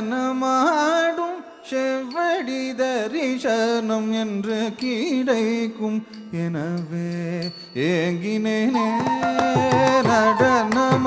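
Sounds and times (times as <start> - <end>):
ornamented singing voice: 0.0 - 11.0.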